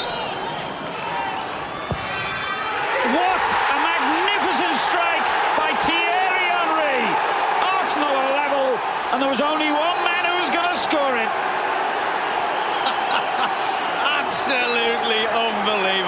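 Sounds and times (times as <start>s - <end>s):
crowd roaring and cheering: 0.0s - 16.0s.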